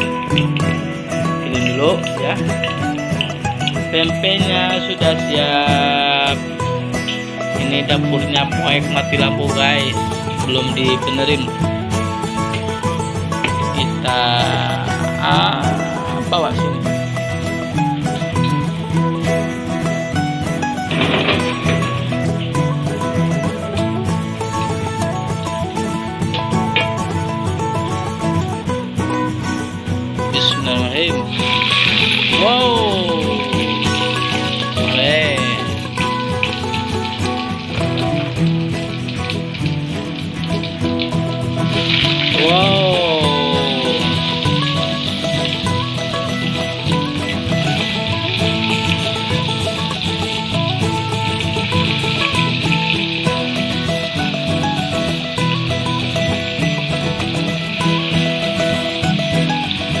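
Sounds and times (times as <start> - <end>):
food sizzling in hot oil: 0.0 - 7.6, 9.6 - 28.8, 29.4 - 60.0
background music: 0.0 - 60.0.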